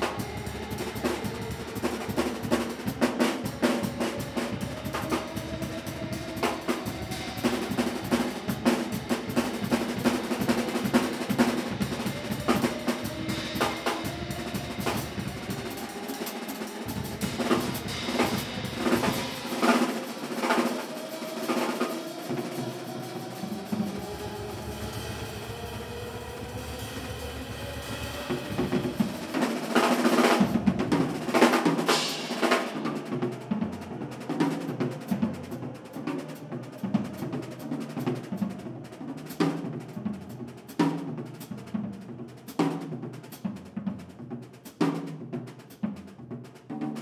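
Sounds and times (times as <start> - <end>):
drum kit playing: 0.0 - 35.6.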